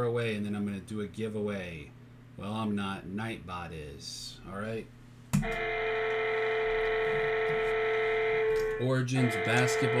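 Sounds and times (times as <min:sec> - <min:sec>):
steady electronic chord tone: 0:05.4 - 0:10.0.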